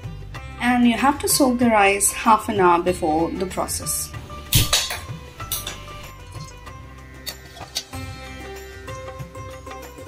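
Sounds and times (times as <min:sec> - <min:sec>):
quiet background music: 0:00.0 - 0:10.0
metal cooking pot clanking: 0:04.5 - 0:08.0.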